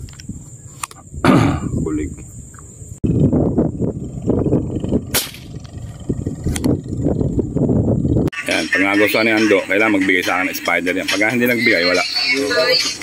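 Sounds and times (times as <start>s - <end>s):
wind buffeting microphone: 0.0s - 8.4s
sharp crack: 5.1s - 5.8s.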